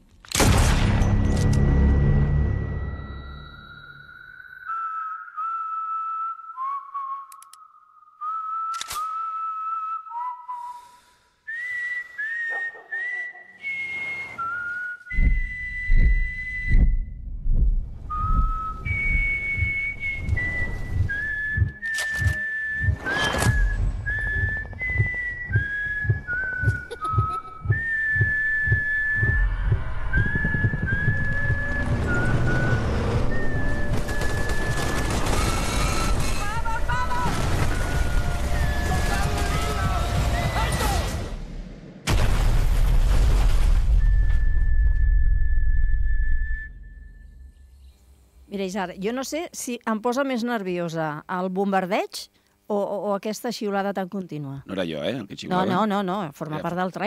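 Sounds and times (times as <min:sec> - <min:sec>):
film trailer soundtrack: 0:00.0 - 0:13.2, 0:14.5 - 0:43.1
whistled melody: 0:02.0 - 0:17.2, 0:18.1 - 0:36.1, 0:37.6 - 0:41.0, 0:43.9 - 0:47.8
heavy thuds: 0:15.1 - 0:32.8
gunfire: 0:33.9 - 0:36.2.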